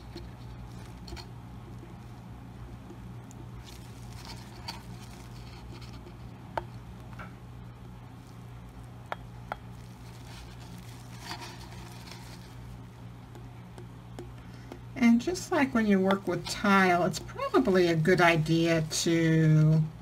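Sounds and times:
steady low hum: 0.0 - 20.0
soft rustles of gloved hands: 3.4 - 6.4, 9.8 - 12.8.

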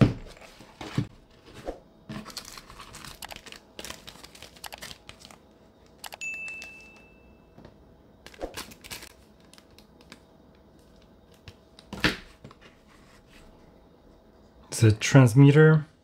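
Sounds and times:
plastic bag crinkling: 2.2 - 5.4, 8.3 - 10.1
steady high chime: 6.2 - 7.6.

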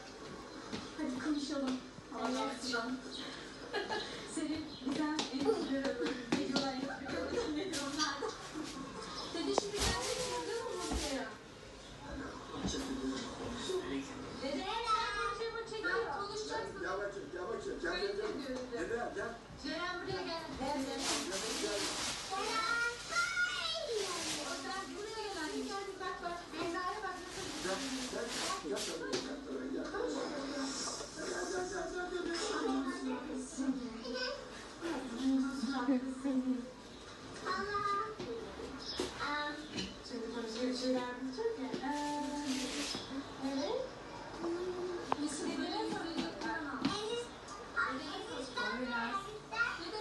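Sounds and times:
voices talking on television: 0.0 - 50.0.

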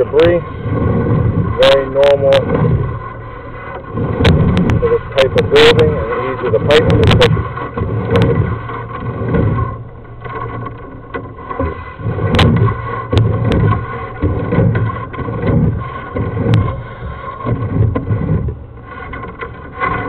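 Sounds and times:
push cable rumbling in drain: 0.0 - 20.0.

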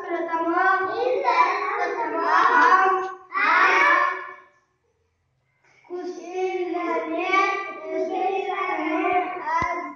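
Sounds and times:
children singing: 0.8 - 4.5.

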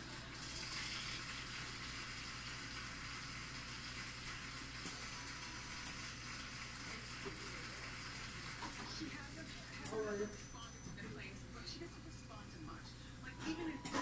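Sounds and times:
audience applauding on television: 0.0 - 9.1.

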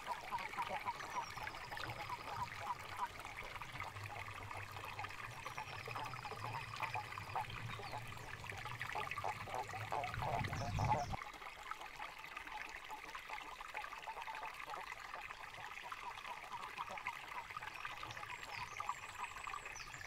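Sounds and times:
water trickling in stream: 0.0 - 20.0.

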